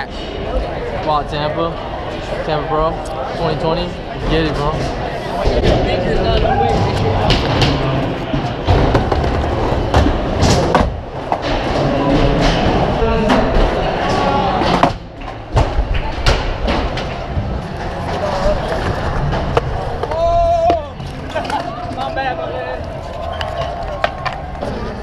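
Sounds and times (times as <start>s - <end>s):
crowd chatter: 0.0s - 25.0s
skateboards clacking: 4.2s - 25.0s.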